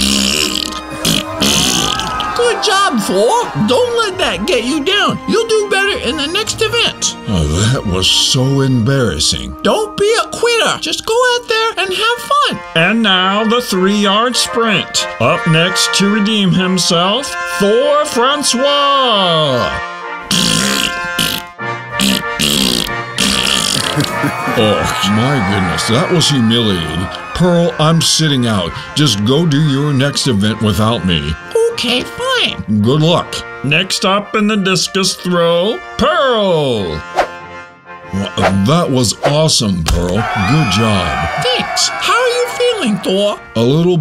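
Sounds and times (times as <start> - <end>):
comic fart sound effect: 0.0 - 2.4, 20.2 - 24.6
background music: 0.0 - 44.0.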